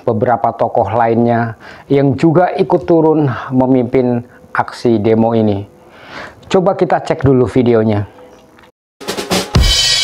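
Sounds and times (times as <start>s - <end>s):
drums: 9.0s - 10.0s
cymbal crash: 9.1s - 10.0s.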